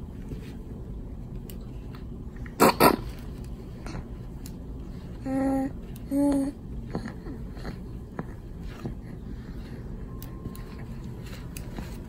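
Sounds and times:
baby coughing: 0:02.6 - 0:03.1.

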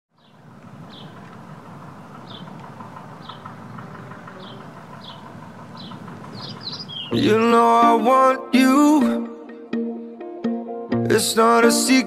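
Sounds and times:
small bird chirping: 0:00.1 - 0:01.2, 0:02.0 - 0:02.6, 0:03.2 - 0:07.3
low outdoor rumble: 0:00.2 - 0:07.8.

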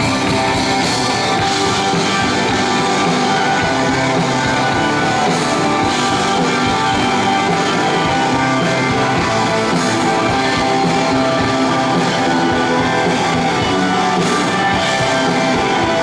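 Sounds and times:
bass guitar: 0:00.0 - 0:16.0
drum kit: 0:00.0 - 0:16.0
electric guitars: 0:00.0 - 0:16.0.

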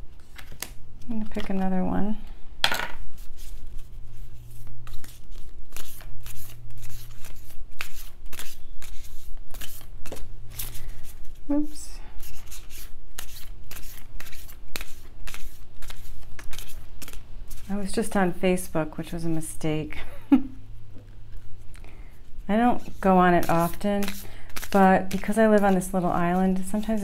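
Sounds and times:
cards being shuffled: 0:00.2 - 0:01.7, 0:02.7 - 0:11.4, 0:12.2 - 0:17.7, 0:22.8 - 0:27.0.

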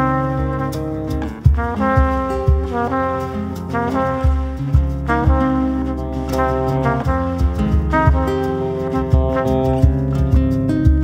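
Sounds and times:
trumpet playing held notes: 0:00.0 - 0:10.2
cajon beat: 0:00.0 - 0:11.0
guitars: 0:00.0 - 0:11.0.

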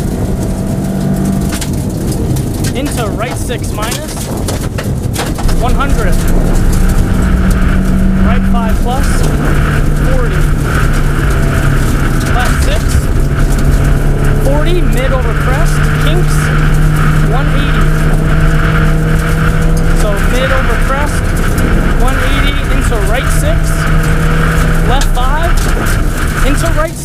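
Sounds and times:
gravel and tyre noise: 0:00.0 - 0:27.0
rally car engine running hard: 0:00.0 - 0:27.0.

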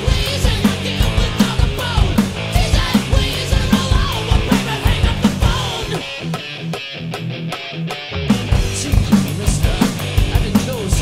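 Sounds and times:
electric guitar chords: 0:00.0 - 0:11.0.

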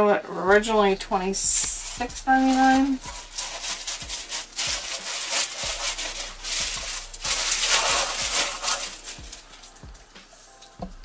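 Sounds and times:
cardboard rubbing and scraping: 0:01.5 - 0:10.5.

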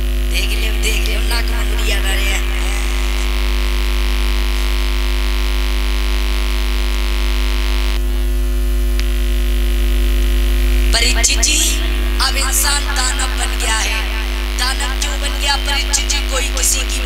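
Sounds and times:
electrical mains hum: 0:00.0 - 0:17.0.

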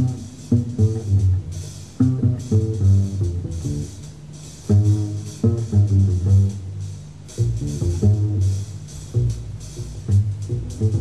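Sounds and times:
jazz trio playing: 0:00.0 - 0:11.0.

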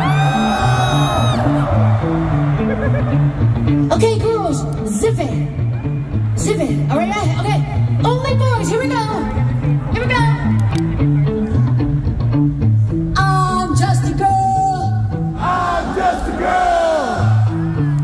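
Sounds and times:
rock band playing: 0:00.0 - 0:14.5, 0:17.2 - 0:18.0.

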